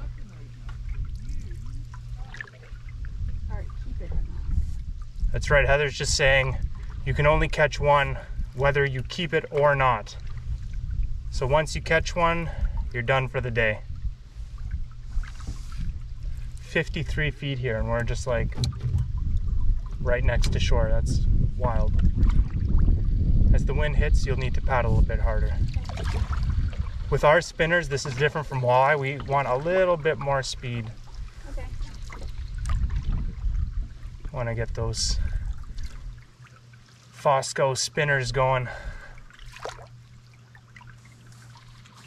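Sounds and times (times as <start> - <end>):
low rumble: 0.0 - 36.7
water swishing off paddle: 14.2 - 16.7, 25.6 - 27.2, 28.0 - 34.3, 35.2 - 37.2, 38.7 - 42.0.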